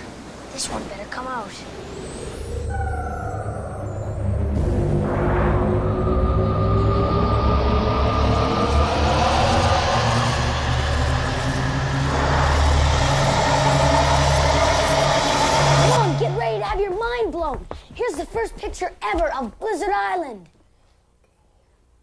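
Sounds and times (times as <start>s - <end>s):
rising hiss: 1.8s - 16.3s
tones gliding upward: 1.8s - 16.3s
low synthesized rumble: 2.5s - 16.4s.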